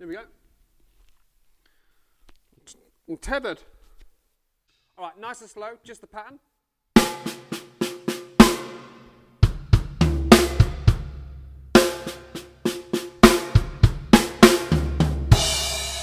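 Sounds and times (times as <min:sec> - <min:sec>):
snare and tom strokes: 0:07.0 - 0:11.1, 0:11.8 - 0:16.0.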